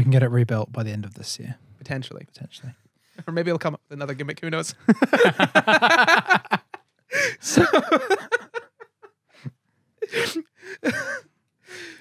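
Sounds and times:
laughter: 0:04.8 - 0:11.4
man gasping for breath: 0:07.1 - 0:07.5, 0:11.6 - 0:12.0.

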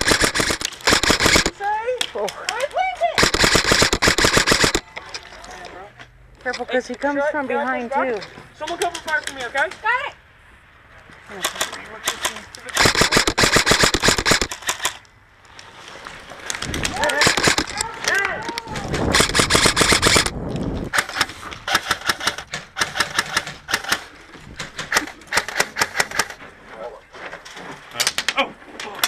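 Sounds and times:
airsoft guns firing: 0:00.0 - 0:01.6, 0:03.2 - 0:04.8, 0:11.4 - 0:15.0, 0:17.1 - 0:17.8, 0:19.0 - 0:20.3, 0:20.9 - 0:26.4
people shouting: 0:16.9 - 0:19.1.

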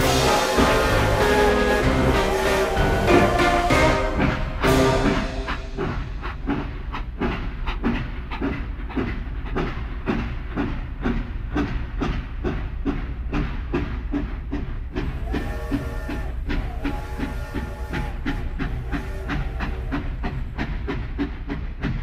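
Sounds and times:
music: 0:00.0 - 0:06.6.

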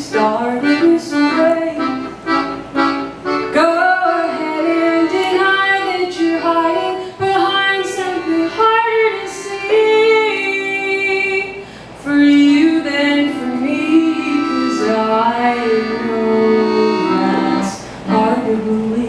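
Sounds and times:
woman singing: 0:00.0 - 0:02.2, 0:03.5 - 0:19.0
accordion chords: 0:00.0 - 0:19.0.

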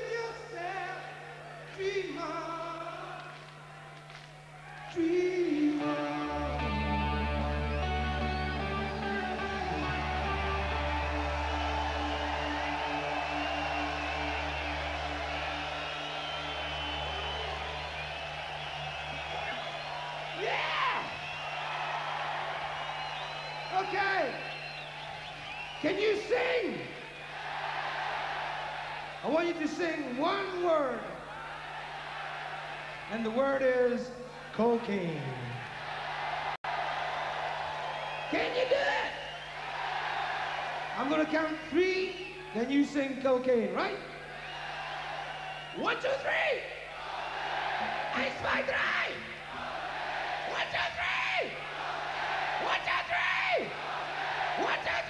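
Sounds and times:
crowd cheering: 0:03.0 - 0:05.2, 0:05.8 - 0:33.5, 0:34.3 - 0:43.2, 0:43.8 - 0:55.0
loud whoops: 0:03.1 - 0:05.2, 0:07.7 - 0:30.0, 0:35.5 - 0:42.6, 0:44.2 - 0:55.0
man singing with vibrato: 0:04.9 - 0:07.0.

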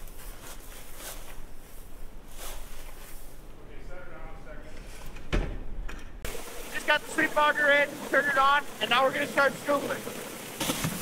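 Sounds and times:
grain rustling and scraping: 0:00.0 - 0:03.4.

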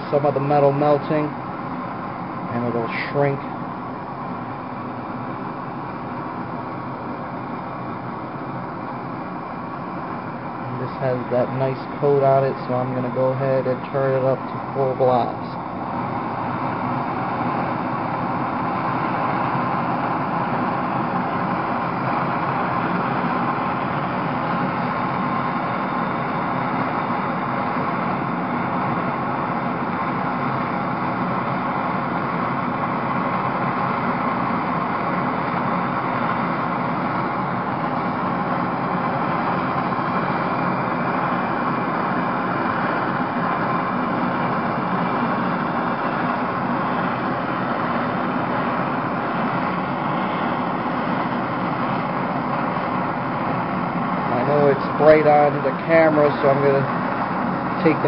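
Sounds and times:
blow torch flame hissing: 0:00.1 - 0:58.0.

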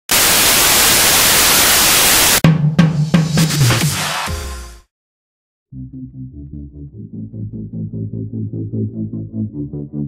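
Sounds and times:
loud static hiss: 0:00.1 - 0:02.4
drum hits: 0:02.4 - 0:04.4
deep bass tone: 0:05.7 - 0:10.0.

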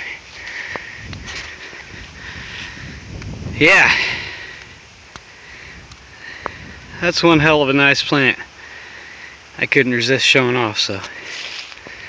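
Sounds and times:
wind rumbling on microphone: 0:00.0 - 0:08.6.

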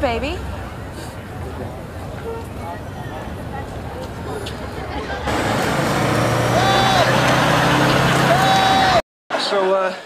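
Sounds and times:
heavy vehicle engine humming: 0:00.0 - 0:09.0
street traffic: 0:00.0 - 0:09.0.

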